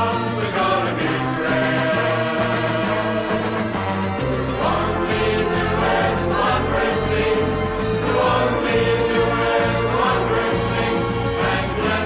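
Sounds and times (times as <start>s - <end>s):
group of voices singing: 0.0s - 12.0s.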